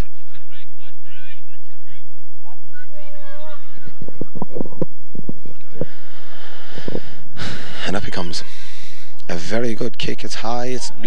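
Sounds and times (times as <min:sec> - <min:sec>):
low rumble of old recording: 0:00.0 - 0:11.0.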